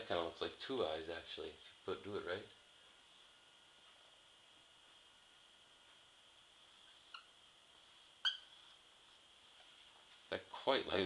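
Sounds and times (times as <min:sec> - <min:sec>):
marker squeaking on whiteboard: 0:06.9 - 0:07.4, 0:08.2 - 0:08.8.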